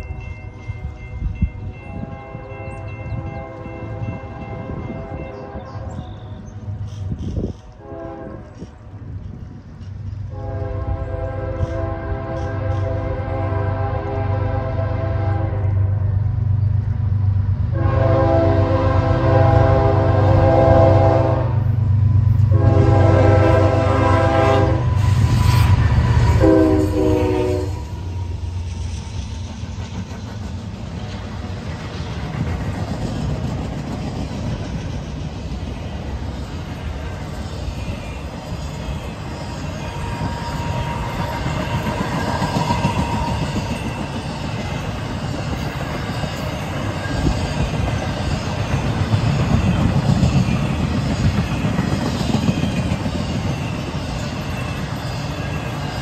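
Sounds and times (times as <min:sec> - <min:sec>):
locomotive horn blasts: 0:01.8 - 0:06.3, 0:07.8 - 0:08.6, 0:10.3 - 0:16.0, 0:17.7 - 0:21.7, 0:22.5 - 0:28.2
train wheel clatter: 0:02.7 - 0:10.4, 0:21.7 - 0:56.0.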